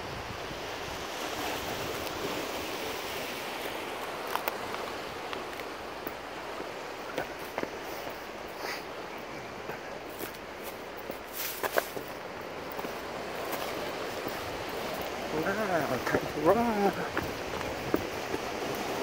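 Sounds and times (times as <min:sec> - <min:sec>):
footsteps and scrapes on rock: 0:07.1 - 0:08.9, 0:09.7 - 0:15.2
surf breaking on rocks: 0:10.4 - 0:19.0.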